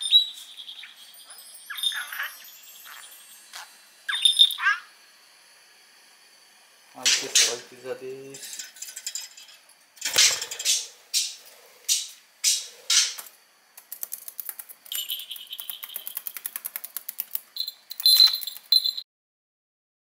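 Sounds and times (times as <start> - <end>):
small bell ringing: 0.7 - 4.9, 14.9 - 16.2
cage toys rattling: 8.4 - 13.2, 13.8 - 19.0
sharp clicks: 11.9 - 18.9.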